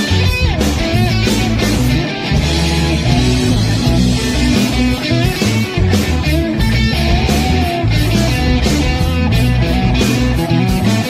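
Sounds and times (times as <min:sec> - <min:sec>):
bass line: 0:00.0 - 0:11.0
drums with cymbals: 0:00.0 - 0:11.0
electric guitar: 0:00.0 - 0:11.0.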